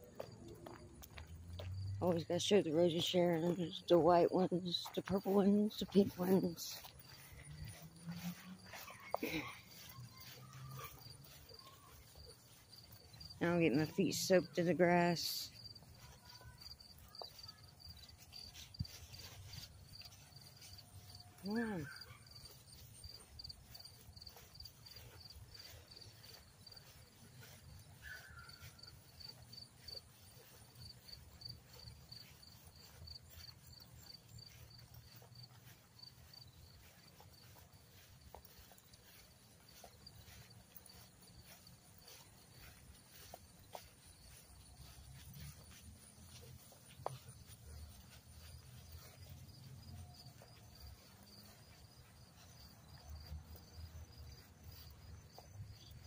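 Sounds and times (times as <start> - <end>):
footsteps through grass: 0.0 - 56.0
insects chirping: 0.0 - 56.0.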